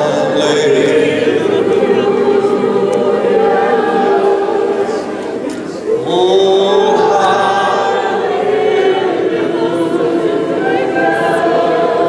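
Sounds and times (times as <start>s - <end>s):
congregation singing: 0.0s - 12.0s.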